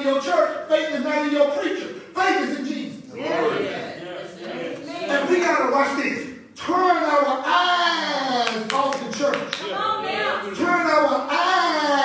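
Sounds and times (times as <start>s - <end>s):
hand claps: 8.4s - 9.7s.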